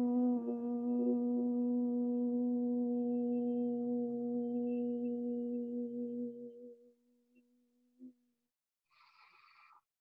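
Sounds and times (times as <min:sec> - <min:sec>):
man humming long steady note: 0:00.0 - 0:07.5.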